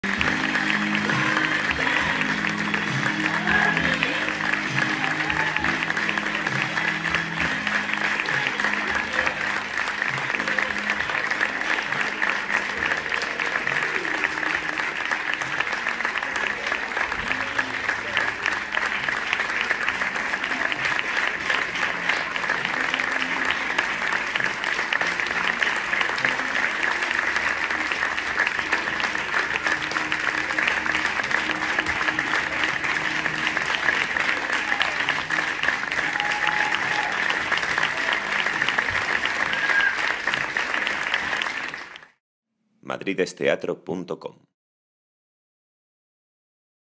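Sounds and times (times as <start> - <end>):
audience applauding: 0.0 - 42.2.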